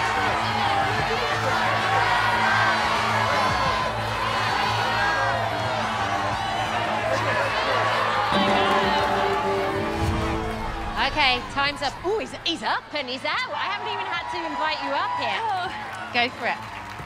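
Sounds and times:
audience shouting and cheering: 0.0s - 17.0s.

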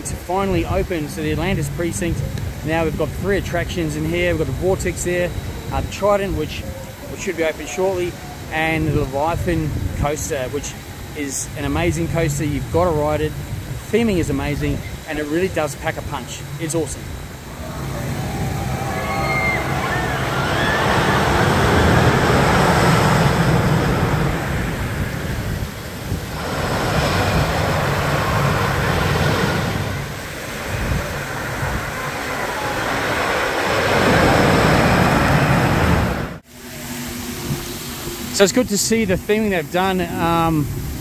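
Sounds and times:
roller coaster rumbling on track: 0.0s - 36.4s
wind buffeting microphone: 8.8s - 36.4s.

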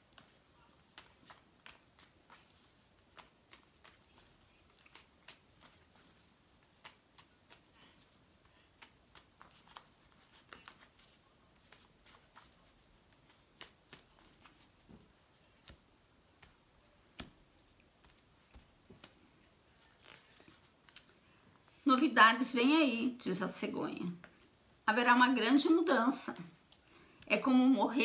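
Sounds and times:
cards being shuffled: 0.0s - 21.2s.

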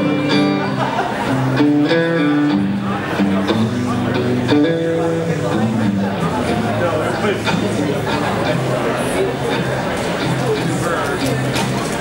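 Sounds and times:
solo electric guitar: 0.0s - 12.0s.

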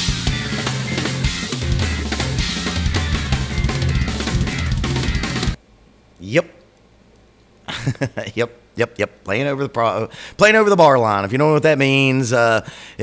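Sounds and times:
drum kit hits: 0.0s - 5.6s
rock band playing: 0.0s - 5.6s.

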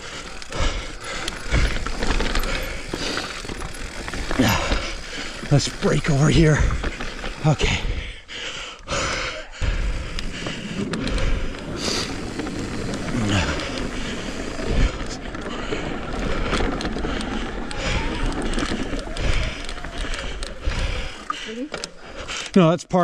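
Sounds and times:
bike clicks and knocks: 0.0s - 7.6s, 9.7s - 22.7s
tyres rolling over dirt: 0.0s - 22.7s
tyres on wooden boardwalk: 0.0s - 23.0s.

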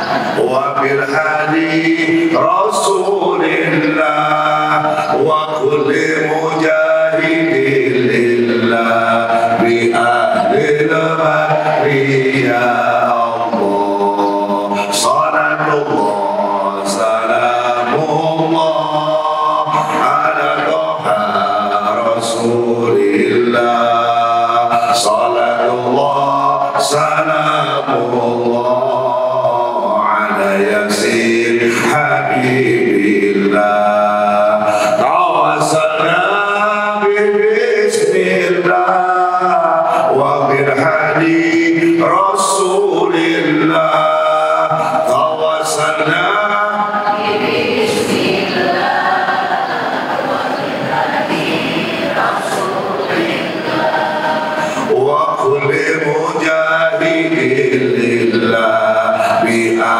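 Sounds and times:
man chanting into a microphone: 0.0s - 48.7s, 52.1s - 59.9s
other voices singing along: 0.0s - 59.9s.

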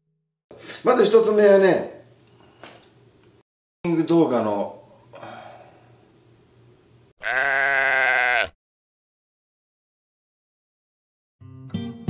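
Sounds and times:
sheep-like bleat: 7.2s - 8.6s.

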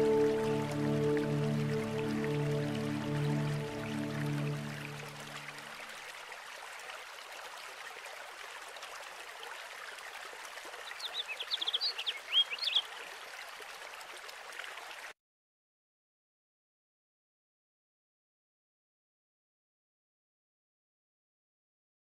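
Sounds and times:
stream trickling: 0.0s - 15.2s
bird chirping: 10.9s - 12.9s.

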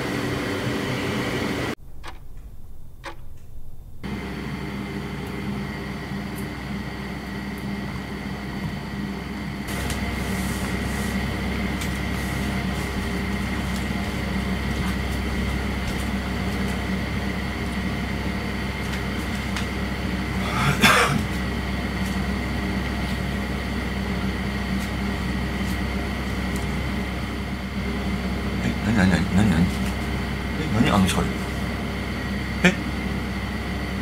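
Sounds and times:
electrical hum with high whine: 0.0s - 34.0s.

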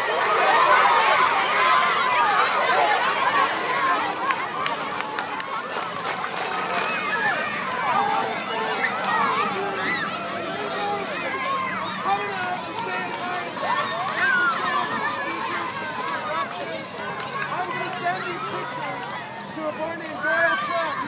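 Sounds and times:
young children chattering: 0.0s - 21.0s.

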